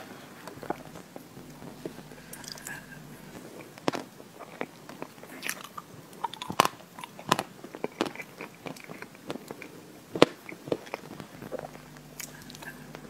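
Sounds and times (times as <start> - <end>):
wet chewing and lip-smacking: 0.6 - 13.0.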